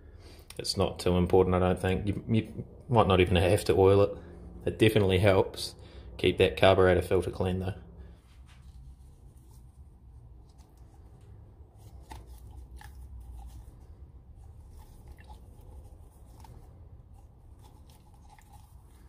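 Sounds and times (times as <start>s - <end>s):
wet squelches of foam filter: 8.1s - 19.0s
plastic cup crinkling: 8.5s - 19.0s.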